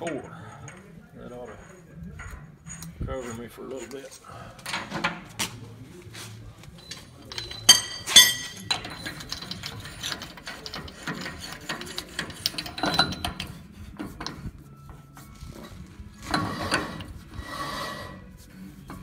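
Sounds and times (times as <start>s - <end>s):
metal clinks: 6.9s - 13.5s.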